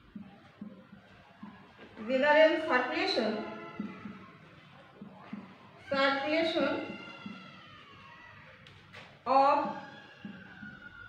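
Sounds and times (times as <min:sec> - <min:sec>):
marker writing on whiteboard: 0:00.0 - 0:07.7.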